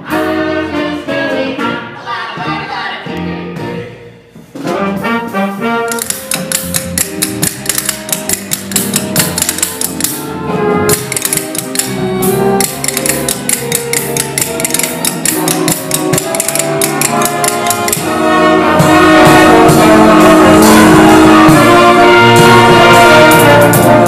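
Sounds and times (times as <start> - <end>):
band playing: 4.6 - 24.0
tap shoes clicking: 5.9 - 10.2, 10.9 - 18.1.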